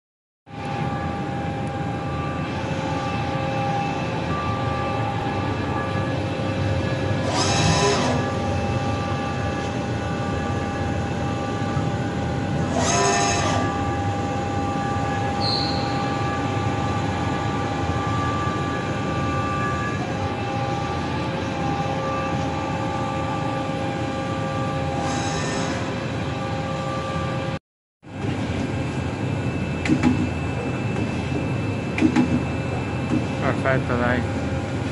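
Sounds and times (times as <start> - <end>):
machine humming and whining: 0.5 - 34.9.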